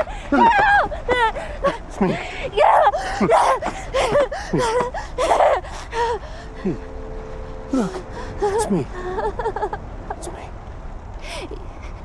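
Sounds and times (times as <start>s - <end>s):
girl gasping and whimpering: 0.1s - 6.9s, 7.7s - 9.4s
girl crying out: 0.3s - 6.8s
man speaking: 7.7s - 9.0s, 10.2s - 10.5s.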